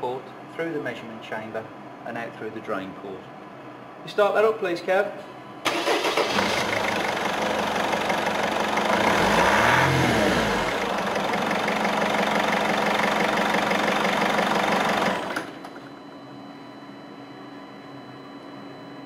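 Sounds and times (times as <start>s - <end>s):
diesel engine running and revving: 6.4s - 15.5s.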